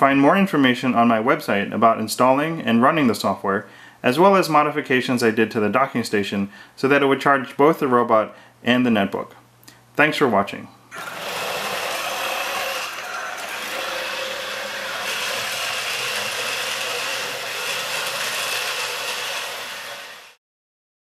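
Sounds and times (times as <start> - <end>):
robot motors whirring and rattling: 11.0 - 20.4.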